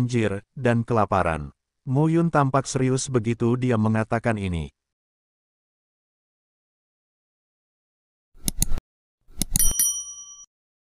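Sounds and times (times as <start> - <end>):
mouse clicks: 8.4 - 9.7
bright bell ding: 9.6 - 10.5.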